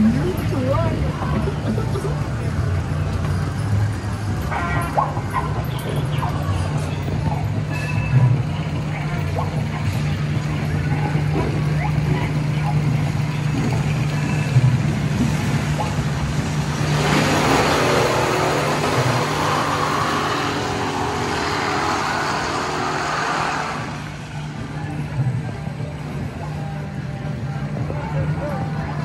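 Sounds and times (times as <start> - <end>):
loud mixed noise: 0.0 - 29.0
ride motor hum: 0.0 - 29.0.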